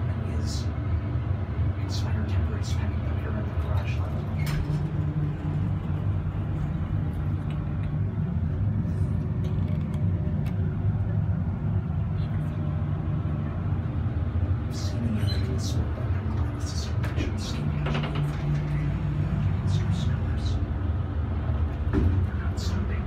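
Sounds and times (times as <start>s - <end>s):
elevator low rumble: 0.0s - 23.0s
elevator door clicks: 17.0s - 18.9s.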